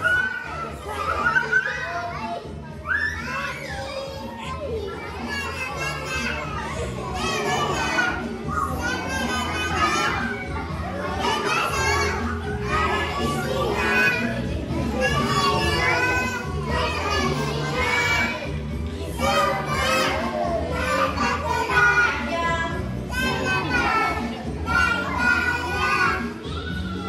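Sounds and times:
young children singing: 0:00.0 - 0:27.0.

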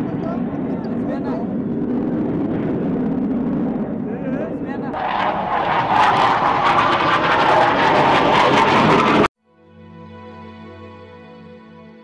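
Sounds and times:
jet aircraft flying past: 0:00.0 - 0:09.3.

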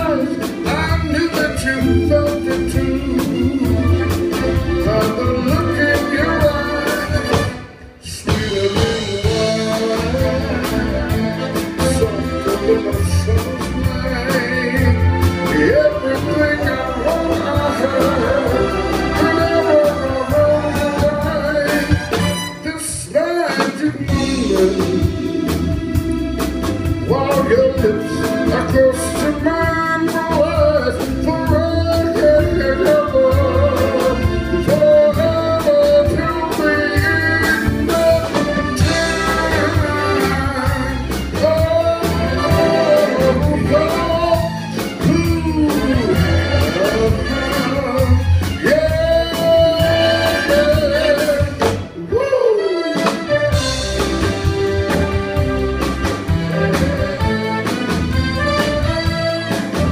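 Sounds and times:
male vocal group singing harmony: 0:00.0 - 0:26.0, 0:27.1 - 0:53.0
bass guitar: 0:00.0 - 0:59.9
live band playing: 0:00.0 - 0:59.9
steady drum beat: 0:00.0 - 0:59.9.

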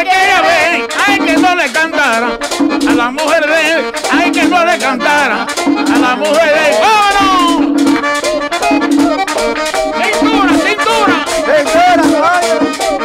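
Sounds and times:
button accordion melodic runs: 0:00.0 - 0:13.0
drum: 0:00.0 - 0:13.0
scraped rhythm: 0:00.0 - 0:13.0.

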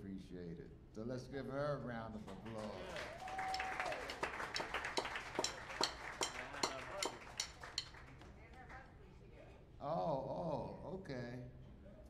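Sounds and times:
small audience applause: 0:02.3 - 0:08.8.

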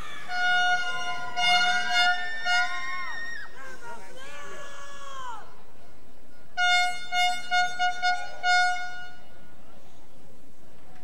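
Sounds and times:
car horns honking: 0:00.0 - 0:03.1, 0:06.4 - 0:09.6.

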